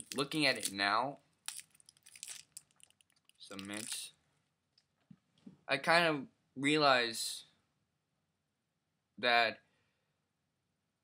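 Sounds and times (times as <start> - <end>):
wrapper crinkling and rustling: 0.0 - 0.8, 1.4 - 4.1.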